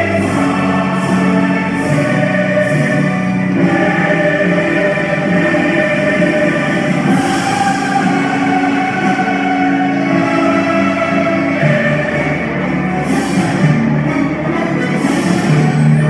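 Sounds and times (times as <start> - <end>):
choir singing held notes: 0.0 - 16.0.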